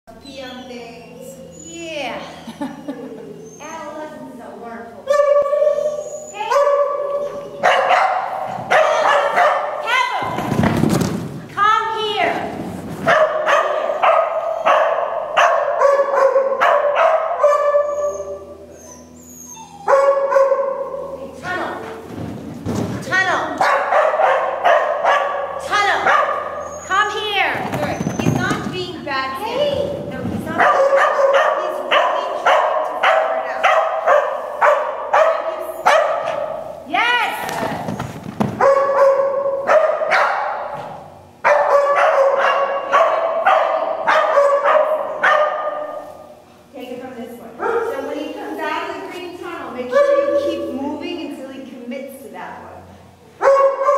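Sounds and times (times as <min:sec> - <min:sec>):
small dog barking rapidly: 0:06.5 - 0:10.6, 0:13.1 - 0:18.0, 0:23.6 - 0:26.7, 0:30.6 - 0:36.6, 0:38.5 - 0:46.0.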